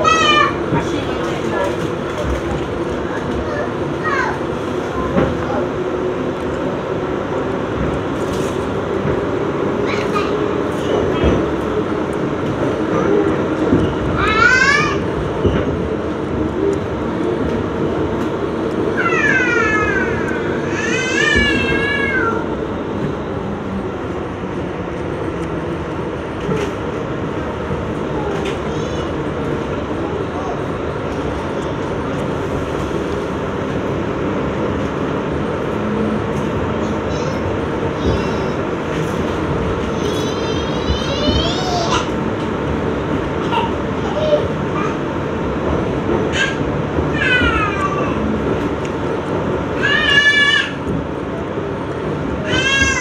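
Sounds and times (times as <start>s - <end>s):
subway train rumbling in tunnel: 0.0s - 53.0s
wheels rattling on track: 0.0s - 53.0s.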